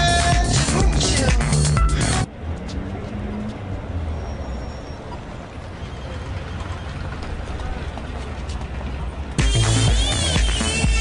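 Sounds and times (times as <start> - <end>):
electronic dance music: 0.0 - 2.3, 9.4 - 11.0
low street rumble: 0.0 - 11.0
faint high chirp: 4.1 - 5.2.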